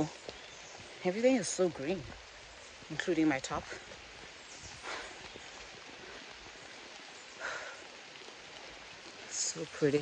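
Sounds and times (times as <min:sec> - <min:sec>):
light drizzle hissing: 0:00.0 - 0:10.0.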